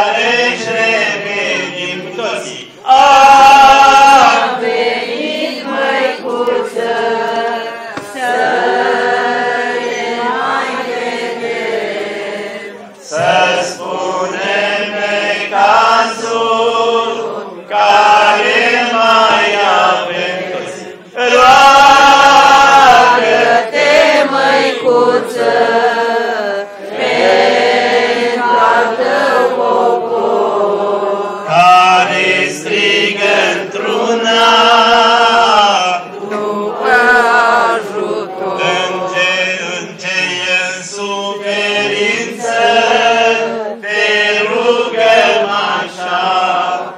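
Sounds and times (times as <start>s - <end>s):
congregation singing a hymn: 0.0s - 46.9s.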